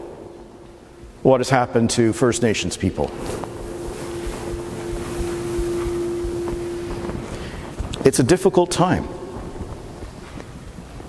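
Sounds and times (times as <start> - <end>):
steady background noise: 0.0 - 11.0
held tone: 2.6 - 10.3.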